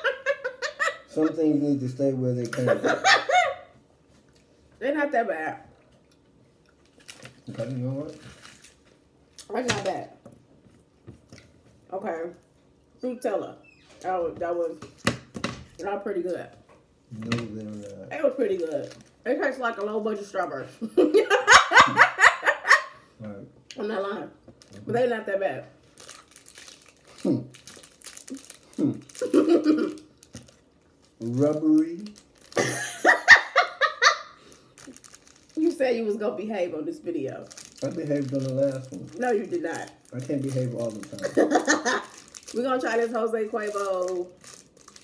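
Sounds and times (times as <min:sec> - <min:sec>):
candy wrapper crinkling: 0:06.8 - 0:09.0, 0:17.4 - 0:19.9, 0:25.8 - 0:33.2, 0:34.4 - 0:35.8, 0:37.3 - 0:45.0.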